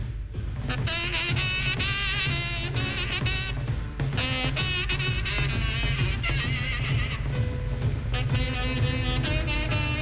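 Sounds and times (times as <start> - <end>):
drums and cymbals: 0.0 - 10.0
saxophone playing free jazz: 0.6 - 10.0.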